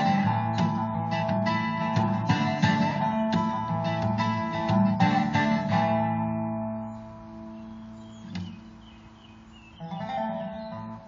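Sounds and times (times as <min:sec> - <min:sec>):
acoustic and slide guitar chord: 0:00.0 - 0:08.6, 0:09.8 - 0:11.0.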